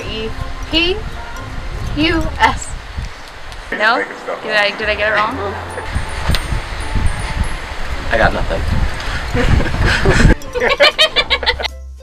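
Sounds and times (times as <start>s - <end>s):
wind buffeting microphone: 0.0s - 11.5s.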